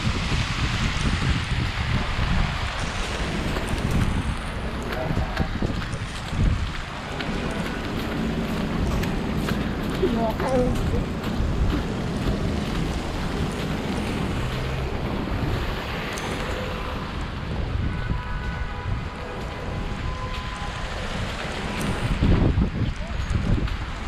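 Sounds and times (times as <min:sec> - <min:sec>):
city street traffic rumble: 0:00.0 - 0:24.0
wind buffeting microphone: 0:00.0 - 0:24.0.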